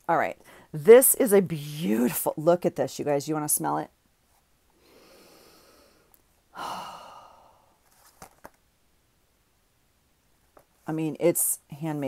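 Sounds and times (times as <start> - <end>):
sighing breath out: 4.8 - 7.8
woman breathing in through nose: 4.8 - 7.8.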